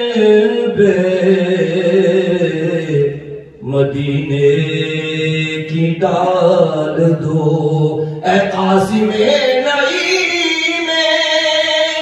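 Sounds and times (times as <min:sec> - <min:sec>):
man chanting: 0:00.0 - 0:12.0
man breathing: 0:08.0 - 0:08.2.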